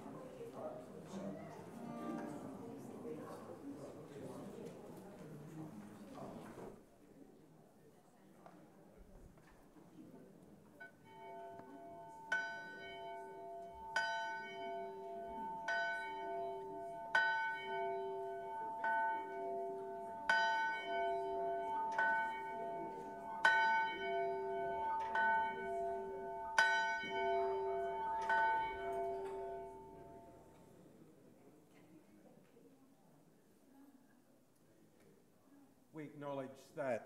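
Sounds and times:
church bell ringing: 10.8 - 30.6.

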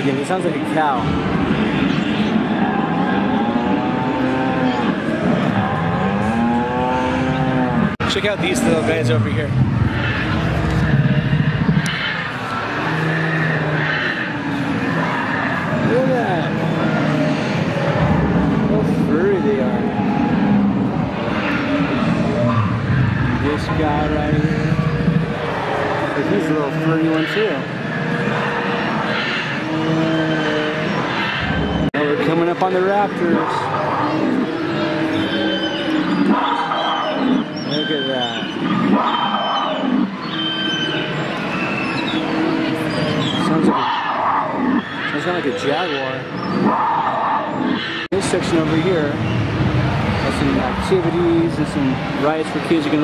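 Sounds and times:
busy hall noise: 0.0 - 53.0
crowd voices: 0.0 - 53.0
dinosaur roar over loudspeakers: 0.0 - 53.0.

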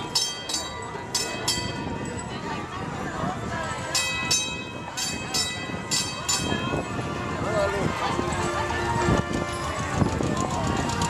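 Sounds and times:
horse hooves clopping on street: 7.8 - 11.0.

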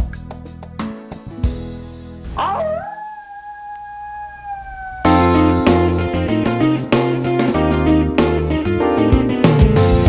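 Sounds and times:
background music: 0.0 - 3.1, 5.1 - 10.0
dog howling: 2.4 - 5.3.

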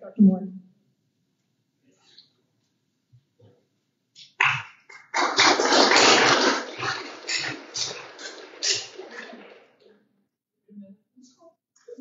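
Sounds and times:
audience applauding: 5.1 - 9.8.

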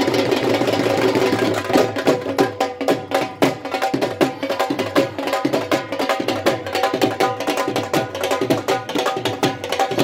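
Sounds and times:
dhol drum roll and beats: 0.0 - 10.0.

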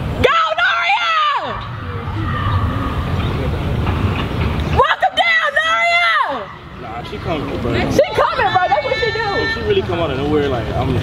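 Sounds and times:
faint distant voices: 0.3 - 11.0.

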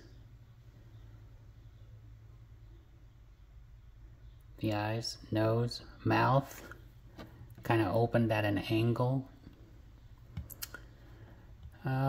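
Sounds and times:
faint sharp clicks: 10.3 - 10.9.

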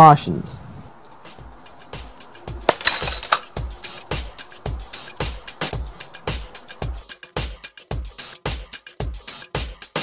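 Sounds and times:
background music with steady beat: 1.1 - 10.0
glass bottle cracking and crashing: 2.7 - 3.5.

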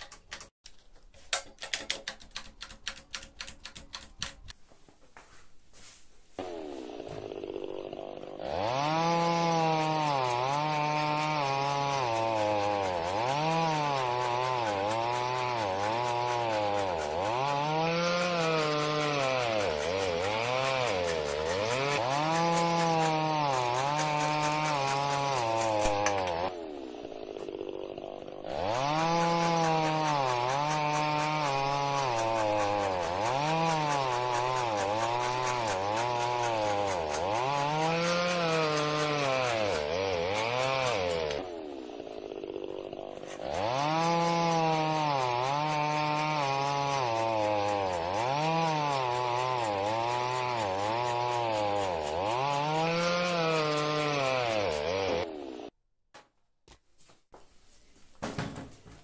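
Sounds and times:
chainsaw cutting wood: 0.0 - 0.6, 1.2 - 4.6, 6.4 - 55.8.

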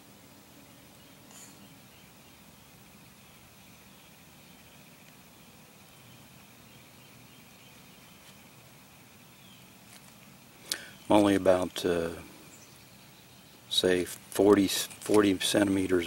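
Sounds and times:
steady hiss: 0.0 - 16.0.

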